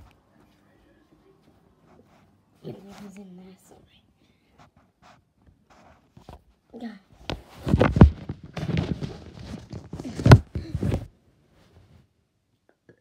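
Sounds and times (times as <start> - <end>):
phone handling thumps and rustling: 7.3 - 11.1.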